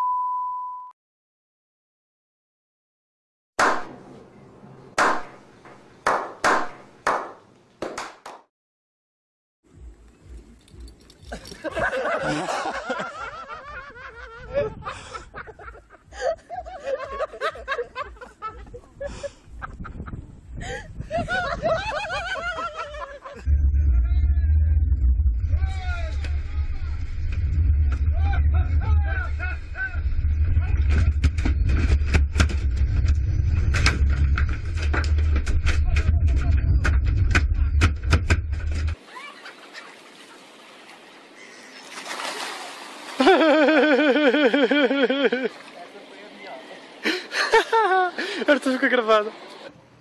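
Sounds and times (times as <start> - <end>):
sharp hand claps with echo: 5.0 - 5.4, 6.0 - 8.5
boat engine rumble: 17.9 - 40.0.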